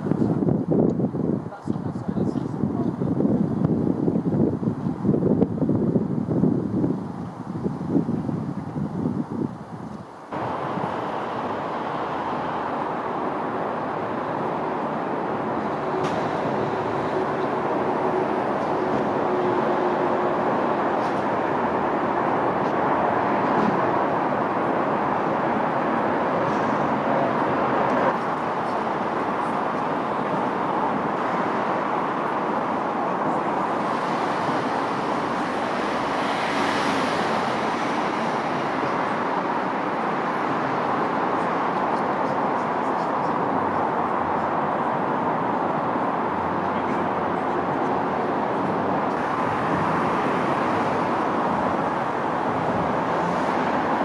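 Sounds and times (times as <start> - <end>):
road traffic noise: 0.0 - 54.0.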